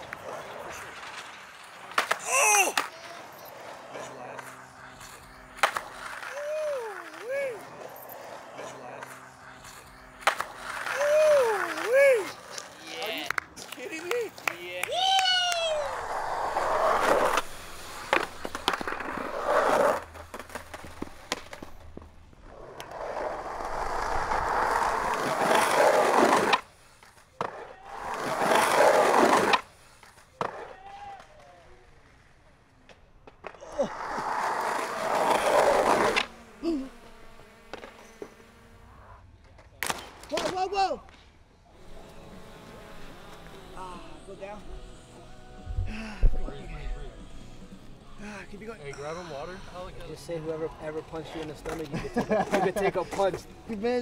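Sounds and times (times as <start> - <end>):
skateboard clacks: 0.0 - 31.4
skateboard wheels rolling on concrete: 0.0 - 54.0
short shouts: 2.2 - 3.4, 6.1 - 7.9, 10.7 - 12.8, 14.8 - 16.0.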